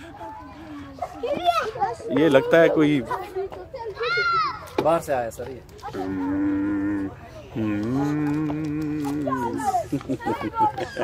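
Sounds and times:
children's voices: 0.0 - 4.8, 5.8 - 11.0.

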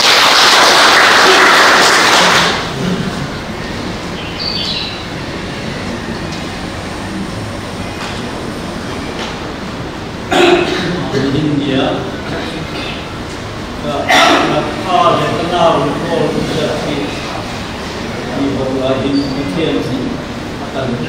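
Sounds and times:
audience applauding: 0.0 - 3.5
hall noise: 0.0 - 21.0.

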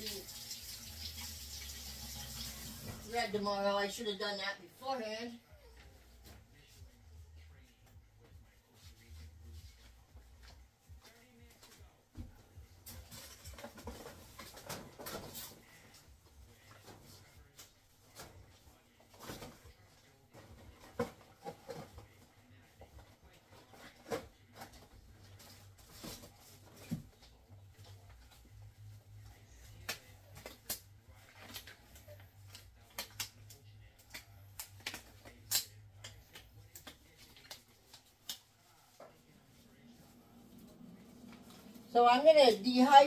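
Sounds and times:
disposable gloves rustling and snapping: 29.7 - 39.0.

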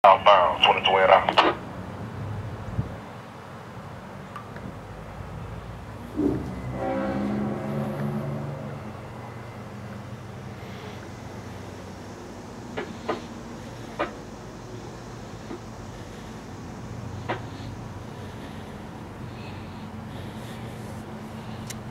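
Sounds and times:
idling engines rumble: 0.0 - 21.9
distant locomotive horn: 6.0 - 12.2.

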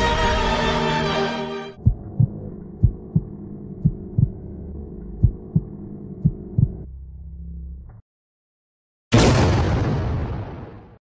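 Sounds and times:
music: 0.0 - 1.8
steady low drone: 0.0 - 8.0
heartbeat thumps: 1.8 - 4.5, 5.1 - 6.9.

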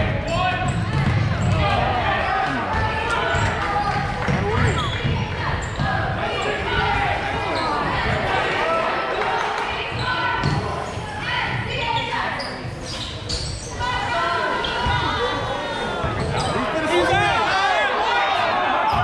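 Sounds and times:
shoes squeaking: 10.0 - 15.2.

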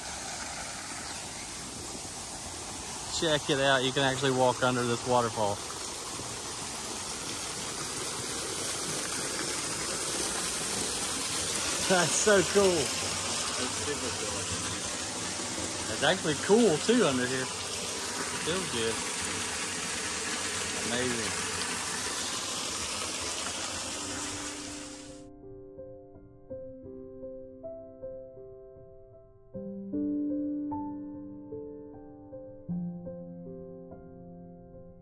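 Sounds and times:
waterfall splashing into pond: 0.0 - 25.2
soft piano music: 11.8 - 17.5, 24.1 - 35.0.

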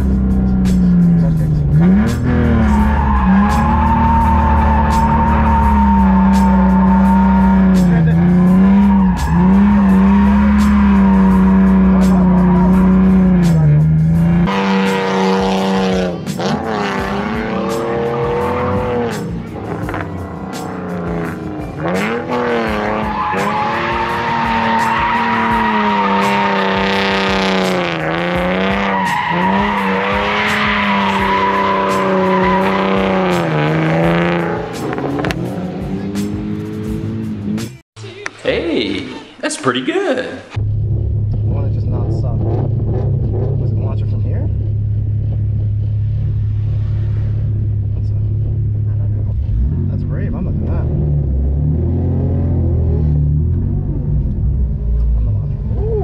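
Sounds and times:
car engine at high revs: 0.0 - 37.8, 40.6 - 56.0
tyres squealing: 1.8 - 13.4, 21.9 - 35.2.

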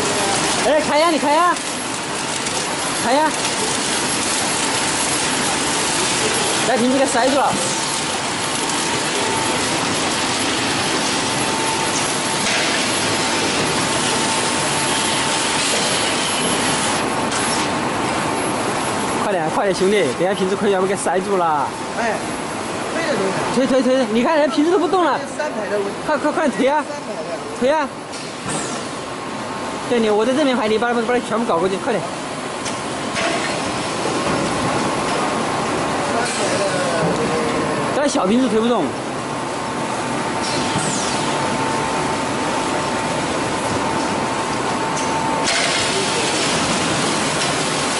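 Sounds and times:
mid-pitched machine whine: 0.0 - 25.2, 31.0 - 47.9
conveyor and bottles clattering: 0.0 - 47.9
machine noise with hiss: 0.0 - 47.9.

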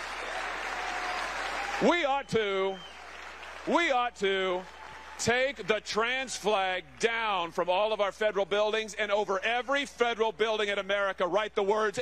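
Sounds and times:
audience applauding: 0.0 - 5.9
man's amplified voice: 1.8 - 2.9, 3.6 - 12.0.

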